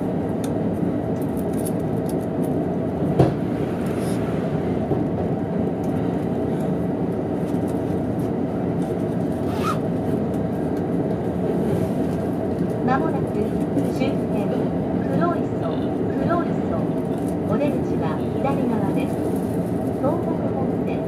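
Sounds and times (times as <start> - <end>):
electric train running at speed: 0.0 - 21.0
wheels rumbling on rails: 0.0 - 21.0.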